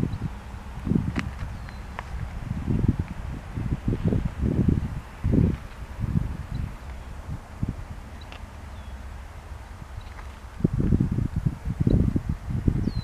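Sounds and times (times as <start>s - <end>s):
distant diesel locomotives rumbling: 0.0s - 13.0s
wind buffeting microphone: 0.0s - 13.0s.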